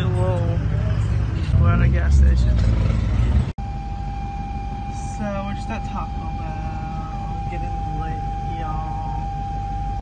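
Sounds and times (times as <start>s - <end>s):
loud low rumble outdoors: 0.0s - 10.0s
road and engine rumble in car: 0.0s - 10.0s
thin steady whine: 3.6s - 10.0s.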